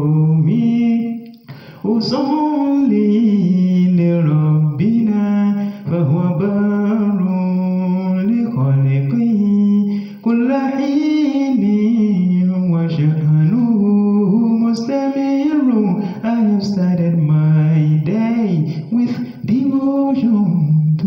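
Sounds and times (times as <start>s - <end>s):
person chanting a poem: 0.0s - 21.0s
short breaths: 1.4s - 1.9s.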